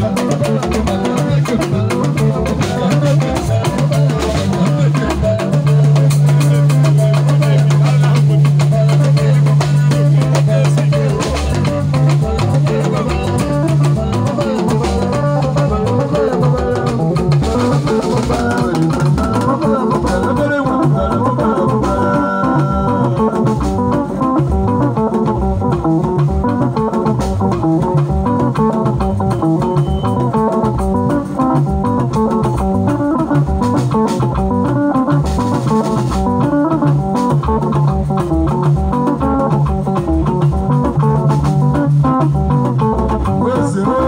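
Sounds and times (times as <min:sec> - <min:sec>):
live band playing instrumental: 0:00.0 - 0:44.0.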